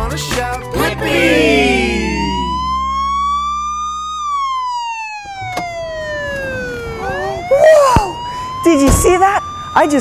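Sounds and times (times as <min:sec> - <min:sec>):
police siren wailing: 0:01.0 - 0:10.0.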